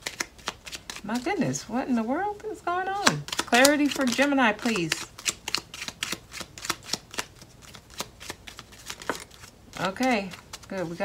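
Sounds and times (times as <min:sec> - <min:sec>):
cards being shuffled: 0:00.0 - 0:02.0, 0:03.0 - 0:11.0.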